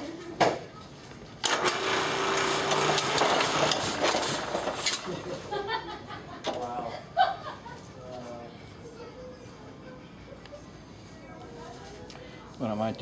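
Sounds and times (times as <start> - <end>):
printing press click: 1.4 - 5.1
printing press mechanical clatter: 1.4 - 5.4
steady machine hum: 1.4 - 7.8.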